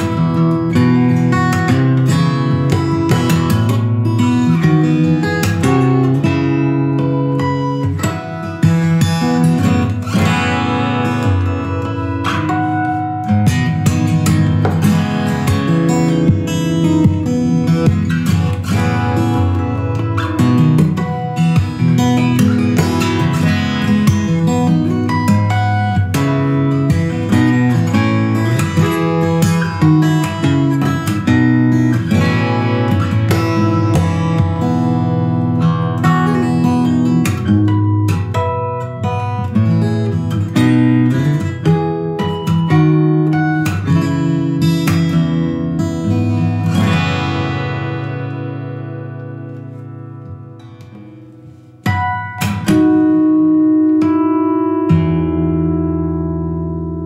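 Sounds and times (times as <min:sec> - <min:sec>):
fingerstyle acoustic guitar: 0:00.0 - 0:57.0.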